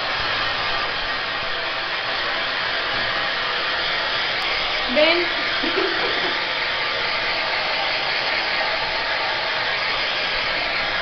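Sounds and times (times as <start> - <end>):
hair dryer blowing: 0.0 - 11.0.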